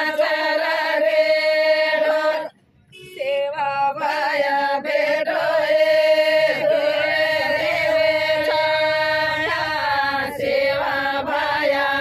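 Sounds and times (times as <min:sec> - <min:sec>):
women singing in unison: 0:00.0 - 0:12.0.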